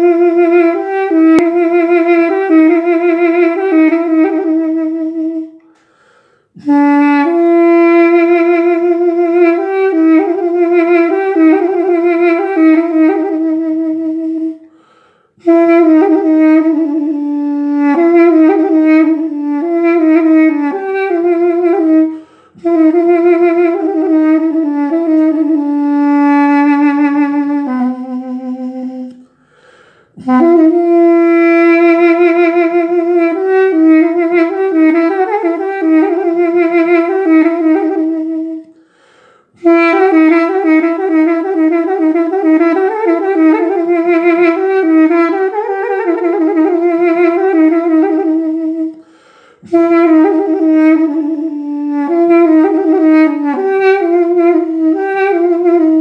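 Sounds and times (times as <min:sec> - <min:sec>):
duduk playing slow melody: 0:00.0 - 0:05.7, 0:06.6 - 0:14.7, 0:15.4 - 0:29.3, 0:30.2 - 0:38.8, 0:39.6 - 0:49.0, 0:49.6 - 0:56.0.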